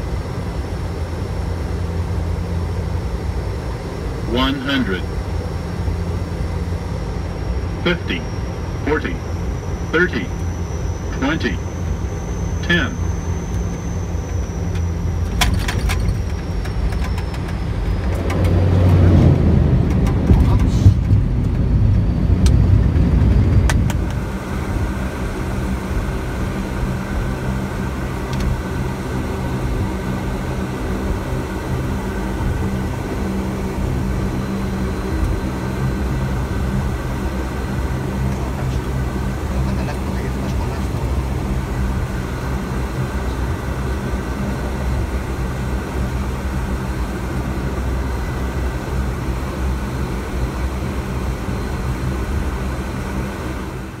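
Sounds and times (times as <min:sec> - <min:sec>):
turboprop engines droning: 0:00.0 - 0:54.0.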